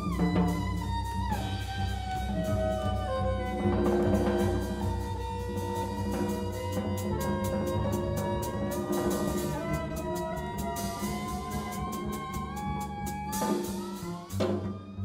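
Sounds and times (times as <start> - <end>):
bowed violin melody: 0.0 - 15.0
double bass: 0.0 - 15.0.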